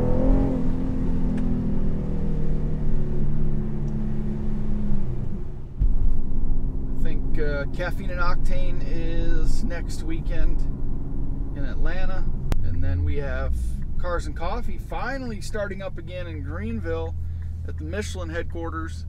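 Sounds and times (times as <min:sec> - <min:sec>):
car engine and exhaust drone: 0:00.0 - 0:19.0.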